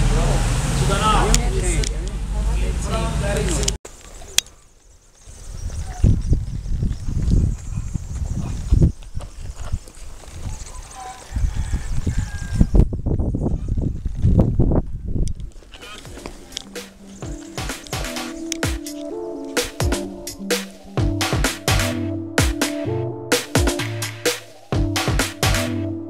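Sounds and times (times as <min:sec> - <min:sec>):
wind gusts on microphone: 0:05.3 - 0:16.5
electronic music with beat: 0:16.0 - 0:26.0.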